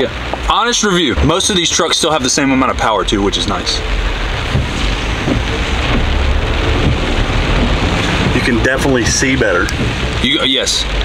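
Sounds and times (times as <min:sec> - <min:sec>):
heavy rain on truck: 0:00.0 - 0:11.0
road and engine rumble: 0:00.0 - 0:11.0.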